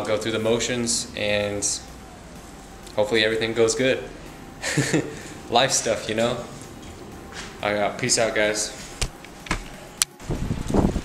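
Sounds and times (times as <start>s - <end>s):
wind rumbling on microphone: 8.9s - 11.0s.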